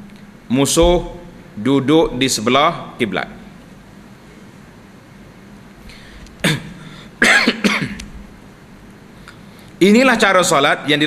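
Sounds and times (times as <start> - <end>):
man clearing his throat: 6.4 - 8.0.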